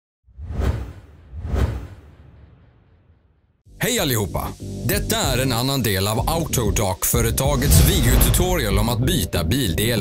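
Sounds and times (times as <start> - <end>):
whoosh sound effects: 7.4 - 8.8
deep low boom: 7.5 - 9.0.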